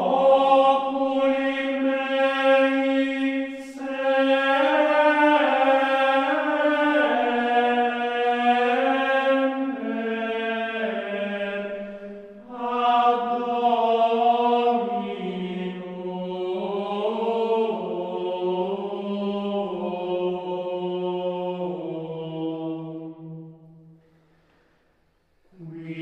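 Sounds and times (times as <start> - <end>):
unaccompanied voices chanting: 0.0 - 22.9, 25.6 - 26.0.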